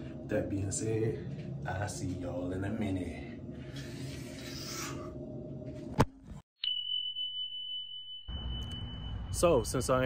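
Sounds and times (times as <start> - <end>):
steady high-pitched tone: 6.6 - 10.0.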